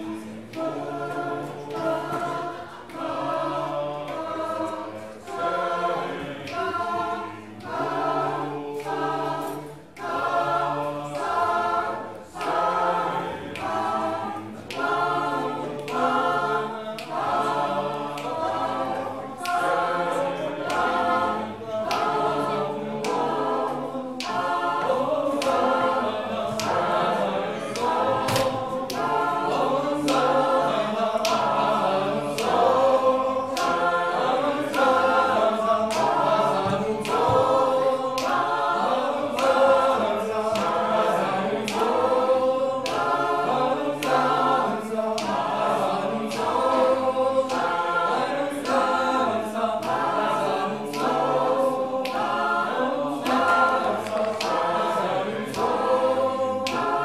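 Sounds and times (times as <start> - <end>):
choir singing a cappella: 0.0 - 57.0.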